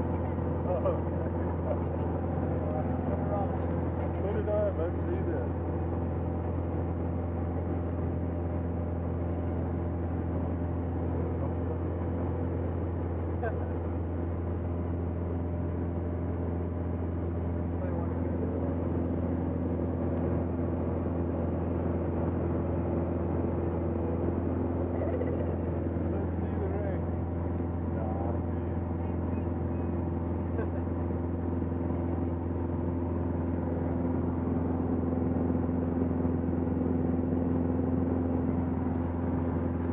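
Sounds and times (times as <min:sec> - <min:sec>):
light aircraft engine droning: 0:00.0 - 0:39.9.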